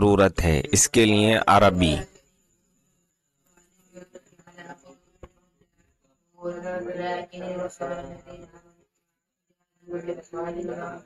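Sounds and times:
man speaking in chant-like way: 0:00.0 - 0:02.0.

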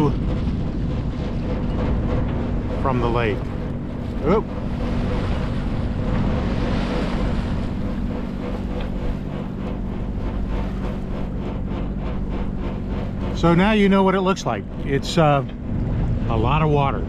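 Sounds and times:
low steady hum: 0:00.0 - 0:17.0
water rushing past hull: 0:00.0 - 0:17.0
wind buffeting microphone: 0:00.0 - 0:17.0.

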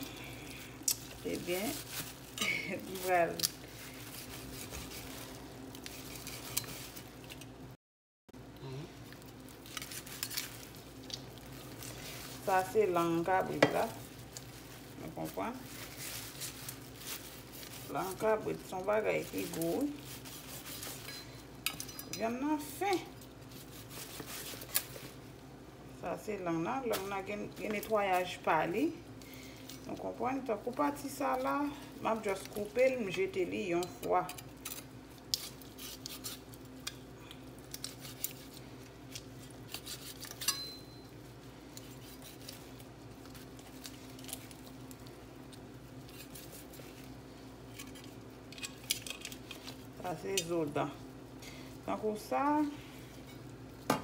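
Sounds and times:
knife cutting and scraping meat: 0:00.8 - 0:07.5, 0:15.6 - 0:22.1, 0:23.4 - 0:25.2, 0:34.0 - 0:37.0, 0:37.6 - 0:40.8, 0:41.6 - 0:49.8.

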